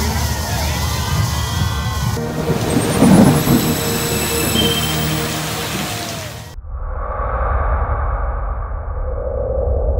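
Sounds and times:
thunder rumble: 0:02.1 - 0:06.6
steady rain: 0:02.2 - 0:06.6
sustained tones: 0:02.2 - 0:06.6.

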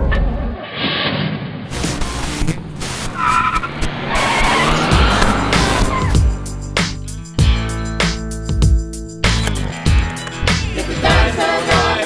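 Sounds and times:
car tyres squealing: 0:00.7 - 0:06.6
car engine: 0:00.8 - 0:08.4
music: 0:04.2 - 0:12.0.

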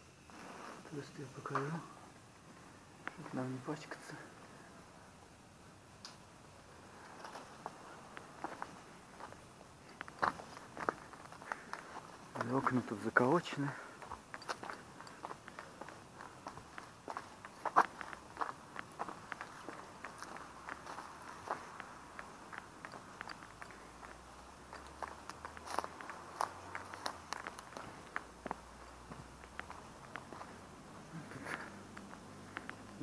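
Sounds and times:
footsteps crunching on rubble: 0:07.0 - 0:33.0.

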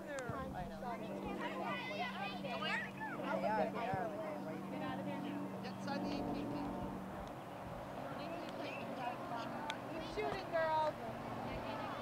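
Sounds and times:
steady low hum: 0:00.0 - 0:12.0
distant high-pitched voices calling: 0:01.4 - 0:03.4.

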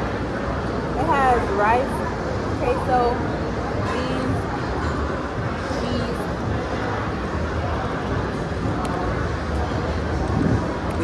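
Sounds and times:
busy food hall background noise: 0:00.0 - 0:11.0.

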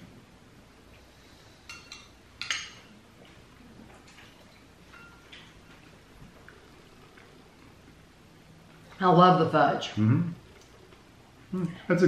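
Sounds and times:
metal spoons clinking on glass bowls: 0:01.7 - 0:02.9, 0:04.1 - 0:05.5.

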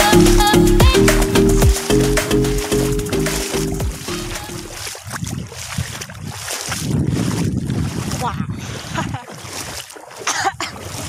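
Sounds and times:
wind buffeting microphone: 0:04.9 - 0:09.8
woman's voice: 0:08.2 - 0:09.3.

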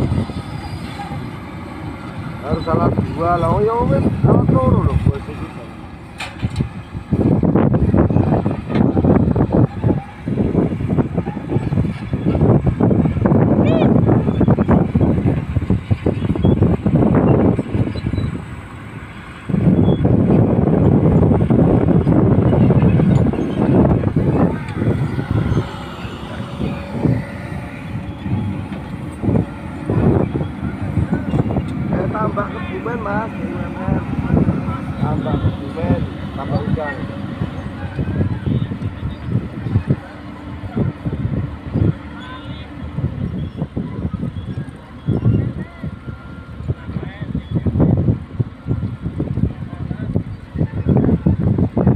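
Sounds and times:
excavator running under load: 0:00.0 - 0:51.9
voices calling out: 0:00.0 - 0:51.9.

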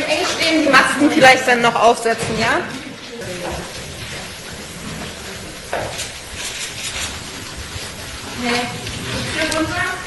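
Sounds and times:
hiss of rustling and movement: 0:00.0 - 0:10.0.

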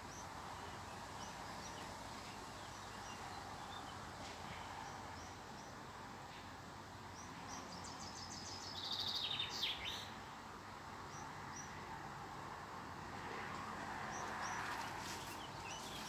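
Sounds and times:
songbird high chirp: 0:00.0 - 0:06.5, 0:07.1 - 0:10.3, 0:14.0 - 0:16.0
faint steady background noise: 0:00.0 - 0:16.0.

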